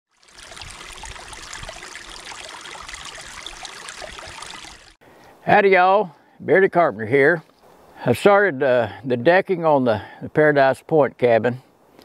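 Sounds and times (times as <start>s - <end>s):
creek water trickling over rocks: 0.1s - 5.3s.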